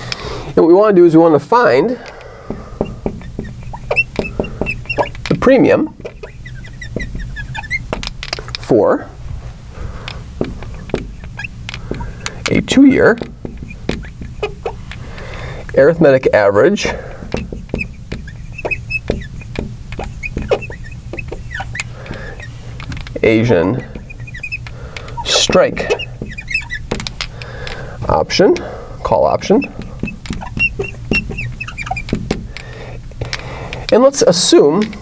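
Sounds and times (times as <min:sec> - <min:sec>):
marker squeaking on glass: 0:01.5 - 0:35.0
marker tip tapping: 0:02.0 - 0:08.6, 0:10.0 - 0:27.9, 0:29.6 - 0:34.0.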